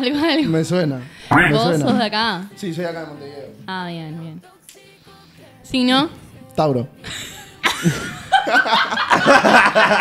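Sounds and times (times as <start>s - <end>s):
people laughing: 7.0s - 10.0s.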